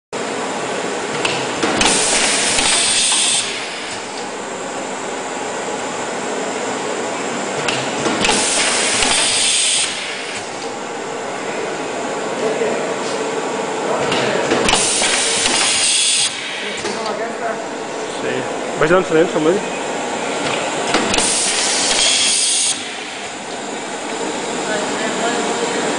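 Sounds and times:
laminator running: 0.2 - 25.9
loud hiss of air: 1.8 - 4.0, 8.2 - 10.5, 14.7 - 17.0, 21.1 - 23.4.

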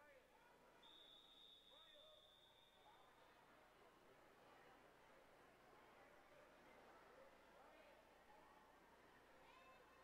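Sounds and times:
faint long whistle blast: 0.8 - 2.9.

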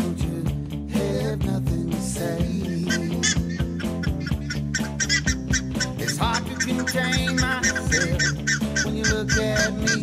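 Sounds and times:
rock song: 0.0 - 10.0
ibises honking: 2.8 - 10.0.

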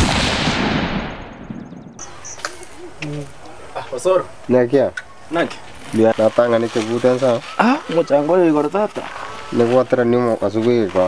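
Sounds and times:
blast with noisy tail: 0.0 - 2.1.

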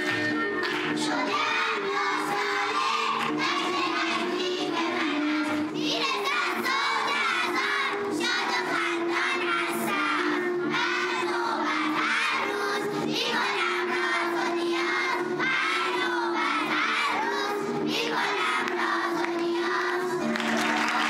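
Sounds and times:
girls singing in unison: 0.0 - 20.3.

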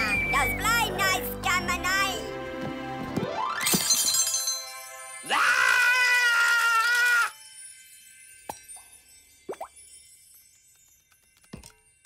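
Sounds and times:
cartoon drip plops: 9.5 - 9.7.

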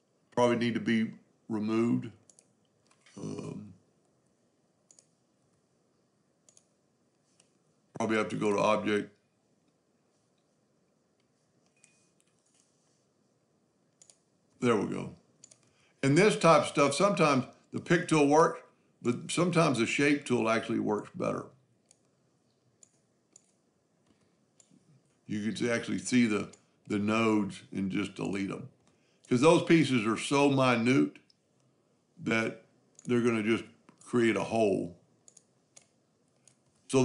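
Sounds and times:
computer mouse clicks: 2.2 - 3.2, 4.9 - 5.6, 6.4 - 7.6, 11.2 - 12.8, 13.9 - 14.3, 15.4 - 15.8, 21.8 - 24.8, 32.9 - 33.2, 35.2 - 36.8.

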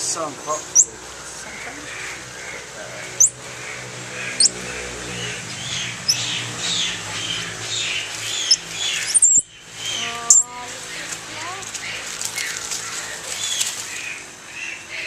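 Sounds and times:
monkeys chattering: 0.0 - 15.0
sharp rising monkey peeps: 0.6 - 1.0, 1.9 - 11.0.

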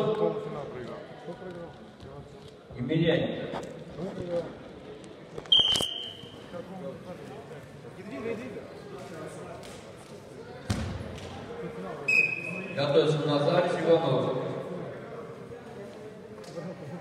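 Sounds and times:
faint voices in a hall: 0.0 - 17.0.

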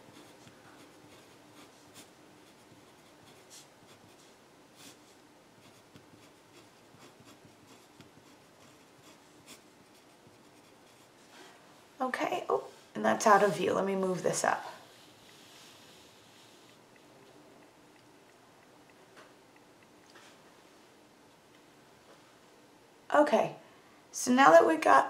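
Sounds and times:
pen scratching on paper: 0.0 - 11.2.

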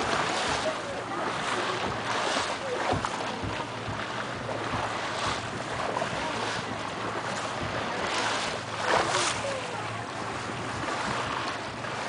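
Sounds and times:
steady low hum: 0.0 - 12.0
water splashing along boat hull: 0.0 - 12.0
wind buffeting microphone: 0.0 - 12.0.

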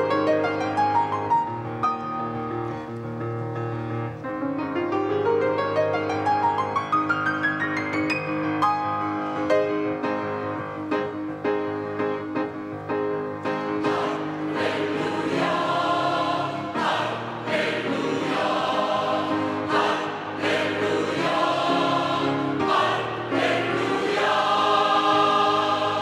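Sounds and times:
mixed choir singing: 13.8 - 26.0.

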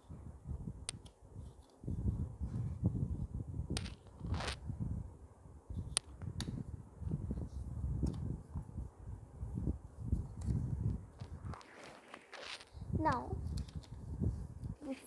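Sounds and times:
paper rustling and rubbing: 11.3 - 12.8
paper crinkles: 11.5 - 12.8.

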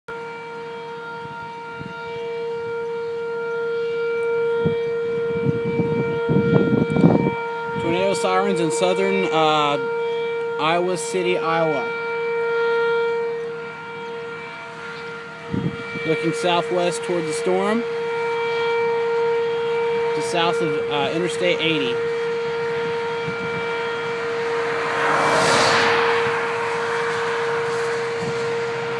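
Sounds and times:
tornado warning siren: 0.1 - 28.9
vehicle tyres passing: 22.4 - 28.9
low rushing noise: 22.6 - 28.9.

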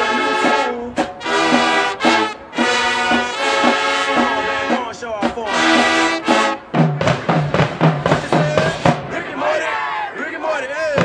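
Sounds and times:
brass chord: 0.0 - 7.9
short low brass notes: 0.0 - 9.2
drums beating steadily: 0.0 - 9.4, 10.8 - 11.0.

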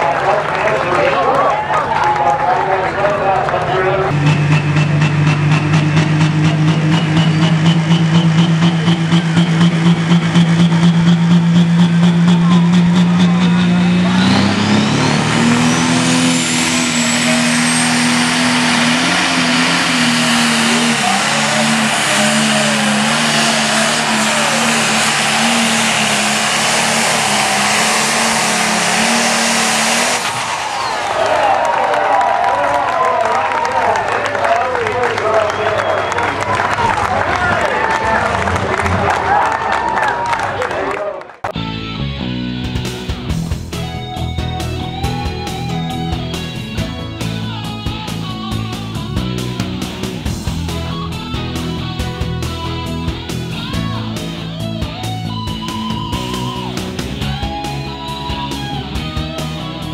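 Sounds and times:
diesel tractor engine revving: 0.0 - 32.3, 34.5 - 59.9
turbo whistle: 4.2 - 31.2.

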